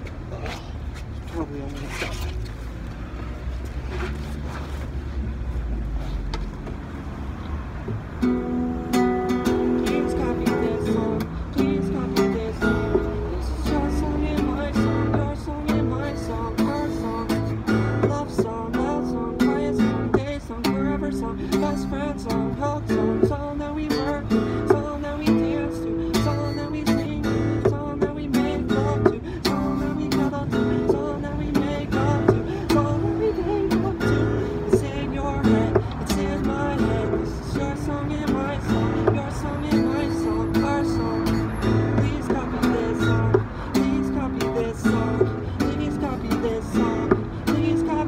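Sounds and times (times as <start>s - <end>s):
acoustic guitar strumming: 8.1s - 48.0s
man singing: 9.4s - 48.0s.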